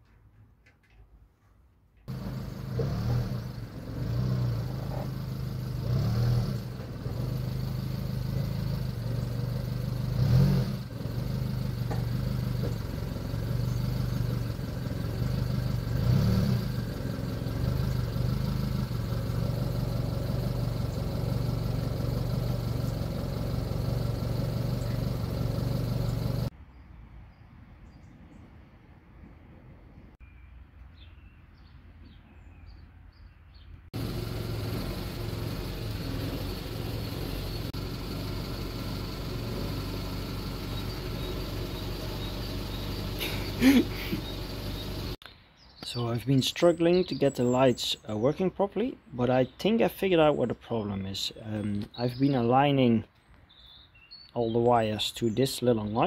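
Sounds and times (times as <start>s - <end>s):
vehicle engine revving: 2.1s - 26.5s, 34.0s - 45.2s.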